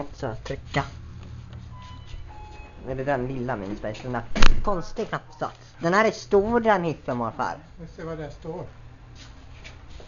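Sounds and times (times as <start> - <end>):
steady low hum: 0.0 - 10.0
lift chime beeps: 1.7 - 3.0.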